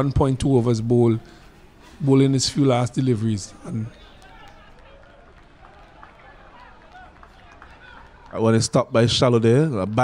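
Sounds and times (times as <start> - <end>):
distant players calling: 0.0 - 8.7.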